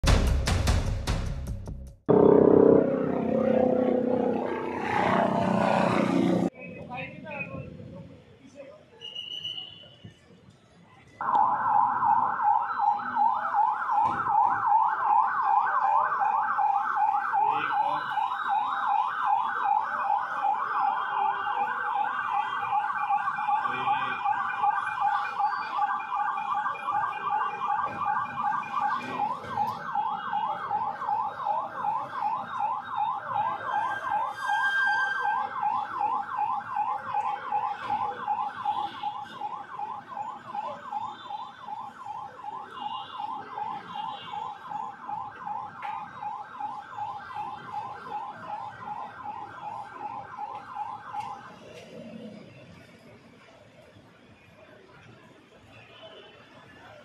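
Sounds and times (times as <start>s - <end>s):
police siren yelp: 2.1s - 6.6s, 11.2s - 53.8s.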